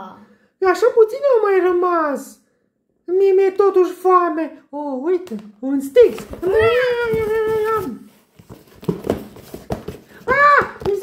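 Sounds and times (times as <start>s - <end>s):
cardboard box knocks on a table: 8.4s - 11.0s.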